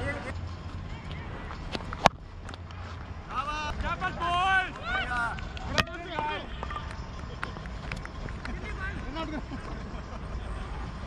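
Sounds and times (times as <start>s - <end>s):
open-air background noise: 0.0s - 11.0s.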